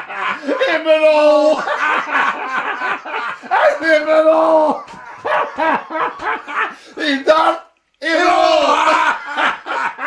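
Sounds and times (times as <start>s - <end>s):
laughter: 0.0s - 7.0s, 8.7s - 10.0s
men yelping excitedly: 0.1s - 10.0s.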